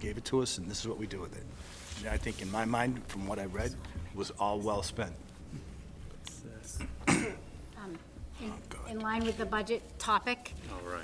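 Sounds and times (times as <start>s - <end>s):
person clearing throat: 6.8s - 7.6s.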